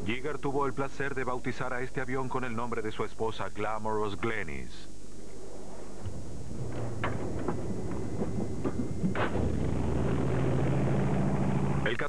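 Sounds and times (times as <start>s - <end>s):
propeller aircraft engines droning: 5.3s - 12.0s.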